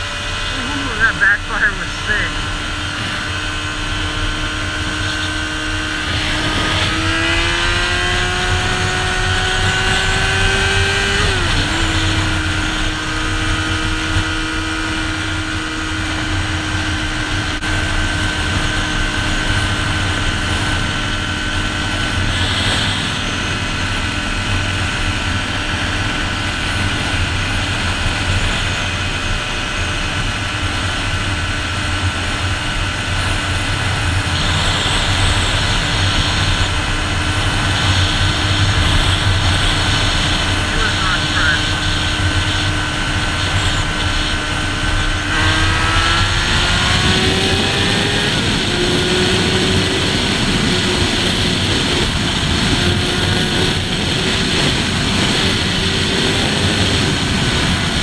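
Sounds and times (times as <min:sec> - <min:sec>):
motorcycle engine cruising: 0:00.0 - 0:58.0
wind rush: 0:31.1 - 0:58.0.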